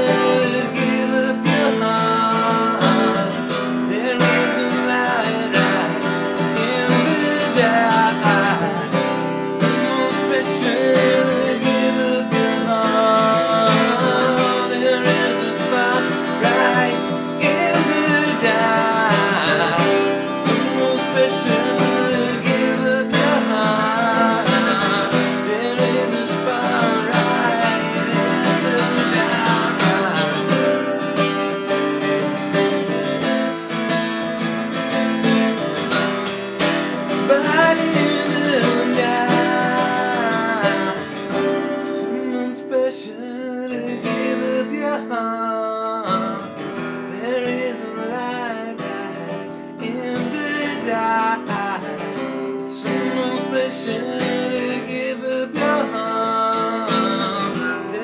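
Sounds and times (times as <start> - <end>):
man singing: 0.0 - 33.2, 34.4 - 58.0
acoustic guitar strumming: 0.0 - 58.0.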